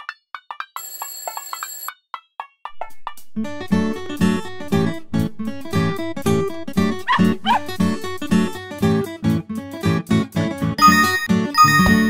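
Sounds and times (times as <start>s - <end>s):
alarm clock bell ringing: 0.8s - 1.9s, 10.8s - 12.0s.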